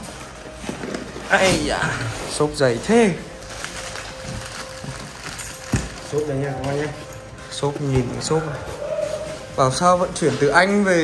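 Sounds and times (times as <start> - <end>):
plastic wrapping rustling: 0.0 - 11.0.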